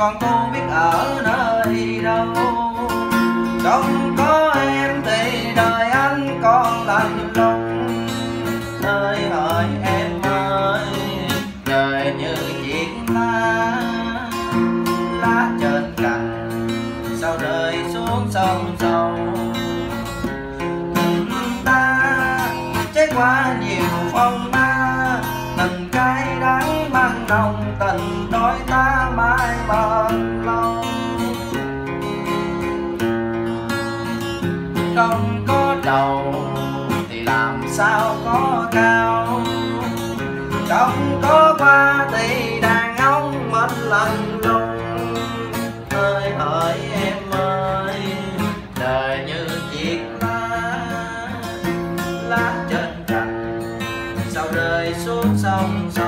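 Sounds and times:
acoustic guitar song: 0.0 - 56.0.

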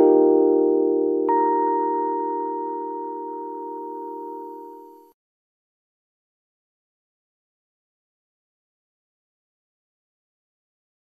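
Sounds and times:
electronic keyboard chord: 0.0 - 5.2.

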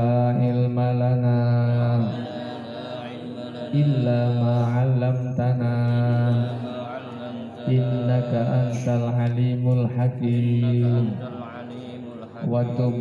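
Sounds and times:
man chanting into a microphone: 0.0 - 13.0.

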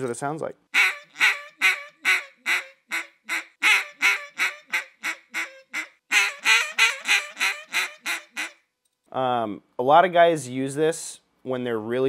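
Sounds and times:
duck call raspy quacks: 0.7 - 8.6.

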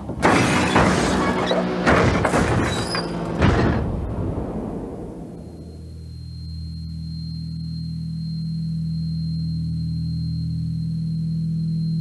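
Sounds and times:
low sustained music drone: 4.6 - 12.0.

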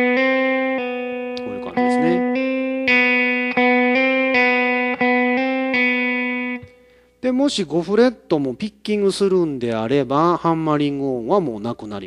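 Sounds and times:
electric guitar hammer-ons and pull-offs: 0.0 - 7.1.

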